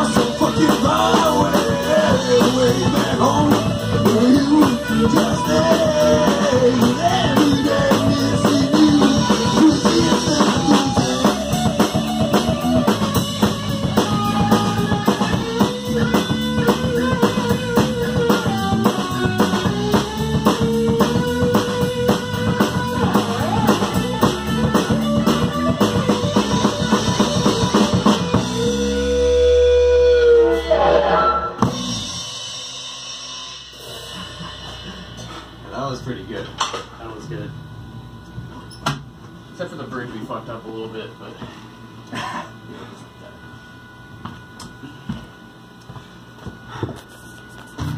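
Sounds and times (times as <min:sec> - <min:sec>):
rock band playing live: 0:00.0 - 0:37.0.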